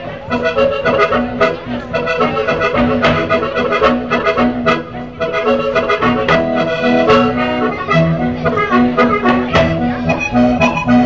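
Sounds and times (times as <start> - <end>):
folk dance music: 0.0 - 11.0.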